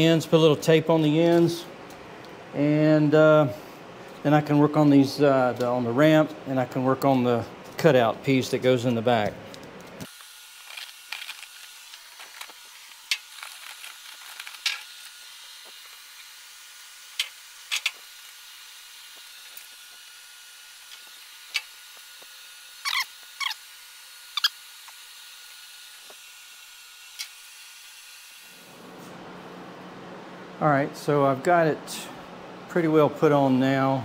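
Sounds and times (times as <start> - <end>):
tape scraping and clicking: 9.5 - 16.0.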